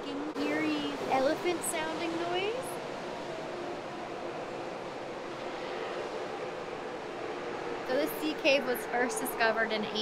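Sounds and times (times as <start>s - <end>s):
ocean surf in sea cave: 0.1s - 10.0s.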